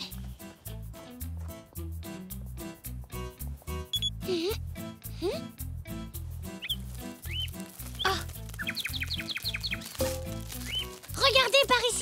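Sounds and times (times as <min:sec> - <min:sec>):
cartoon music with bouncing bass: 0:00.7 - 0:12.0
rising chirps: 0:06.5 - 0:11.0.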